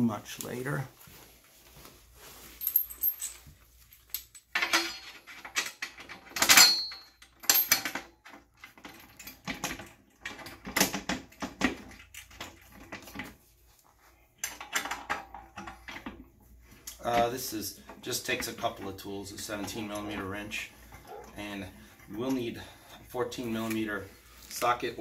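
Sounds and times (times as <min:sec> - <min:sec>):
bolts and nuts clinking: 0:02.4 - 0:13.4, 0:14.3 - 0:25.0.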